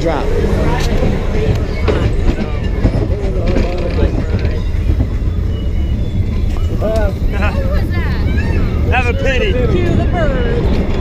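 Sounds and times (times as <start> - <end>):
roller coaster rumbling on track: 0.0 - 11.0.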